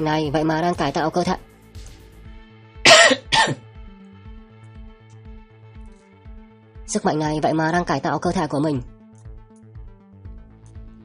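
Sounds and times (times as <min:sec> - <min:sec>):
music with low beat: 0:00.0 - 0:06.5.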